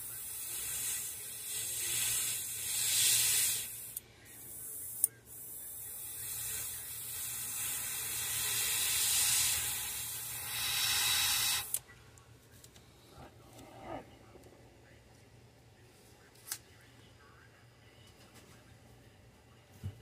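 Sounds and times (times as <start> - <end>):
airbrush spraying hiss: 0.0 - 11.8.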